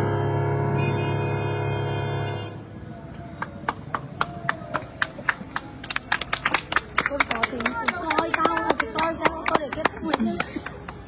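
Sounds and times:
audience clapping: 3.1 - 11.0.

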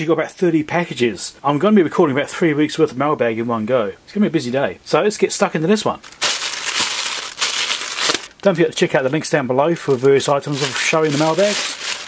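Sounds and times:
plastic mailer bag crinkling: 6.0 - 12.0.

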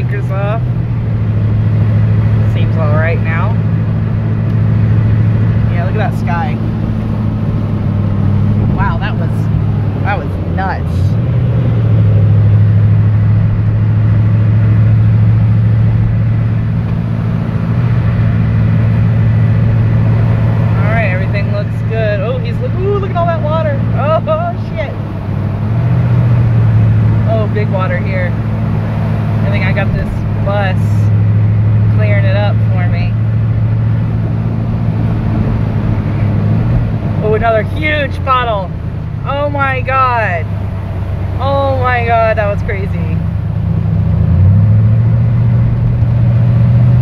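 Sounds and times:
truck engine and road drone: 0.0 - 47.0.

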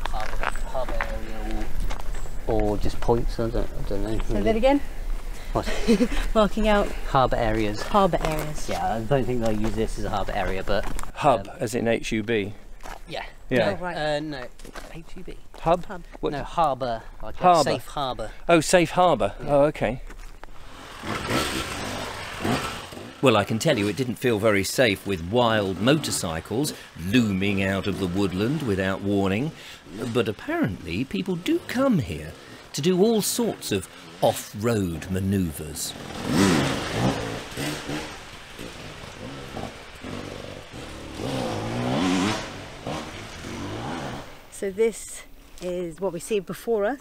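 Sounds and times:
motorcycle engine revving: 20.6 - 44.5.

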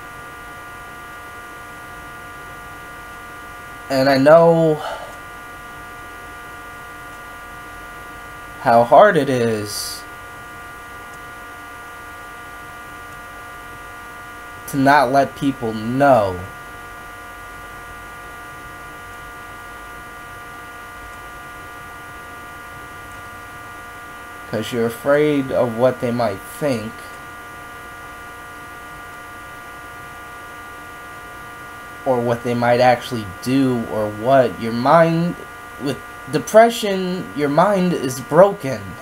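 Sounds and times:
electrical mains hum: 0.0 - 39.0.

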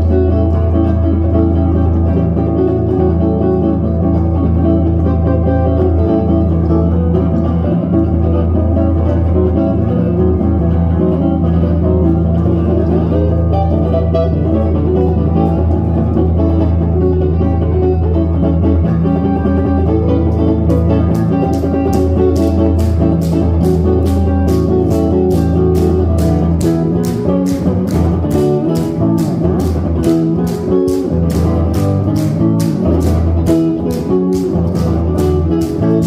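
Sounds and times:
electric bass: 0.0 - 36.0
electric guitar melody: 0.0 - 36.0
drums: 18.1 - 36.0
audience clapping along: 21.2 - 35.9.

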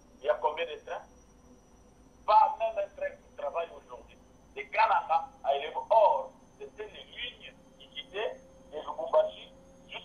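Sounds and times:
person talking over telephone: 4.6 - 10.0.

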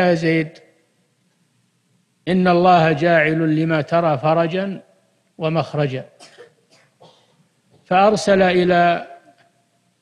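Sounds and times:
man lecturing: 0.0 - 0.7, 2.3 - 6.4, 7.8 - 9.4
faint short coughs: 6.2 - 7.5.

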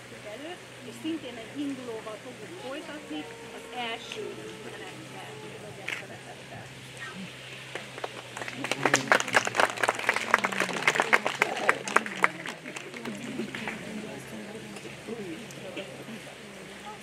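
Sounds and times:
audience clapping: 7.6 - 14.3.

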